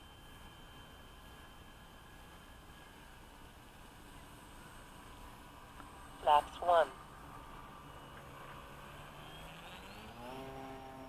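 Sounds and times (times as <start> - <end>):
model plane electric motor whine: 0.0 - 11.0.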